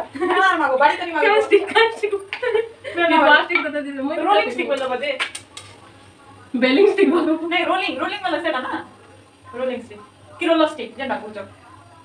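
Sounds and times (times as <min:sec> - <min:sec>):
food frying in oil: 0:00.0 - 0:12.0.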